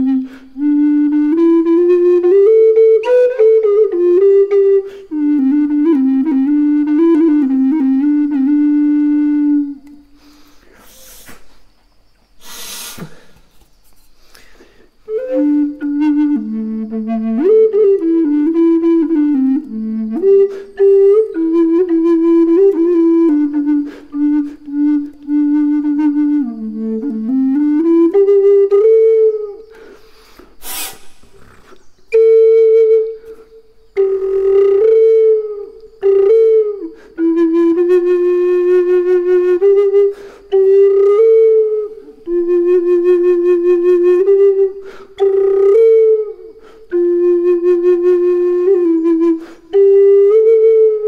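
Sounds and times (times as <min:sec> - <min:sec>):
faint hissing noise: 0:00.0 - 0:51.0
low flute note: 0:15.1 - 0:29.7, 0:30.6 - 0:51.0.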